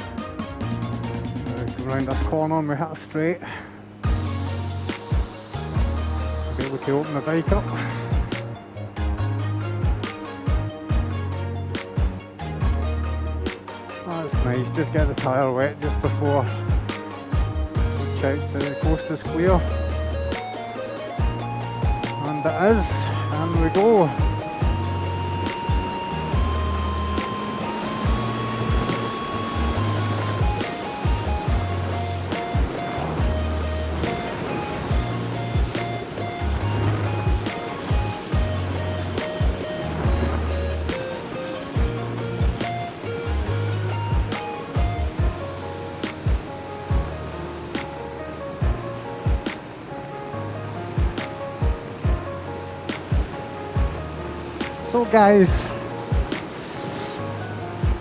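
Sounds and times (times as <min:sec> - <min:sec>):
background music with drums and bass: 0:00.0 - 0:58.0.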